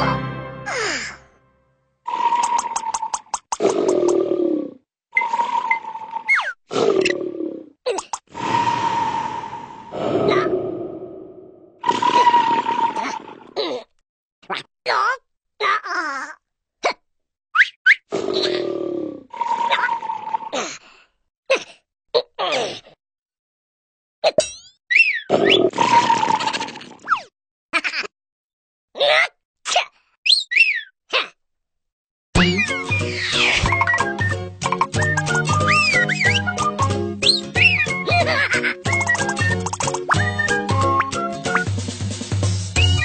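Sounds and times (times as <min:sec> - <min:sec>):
whistle-like downward slide: 0:08.4 - 0:10.0, 0:11.8 - 0:13.2
grunting vocal sound: 0:10.0 - 0:11.4
cartoon character vocal noises: 0:10.1 - 0:10.6, 0:13.0 - 0:17.0, 0:29.0 - 0:29.9, 0:31.1 - 0:31.4.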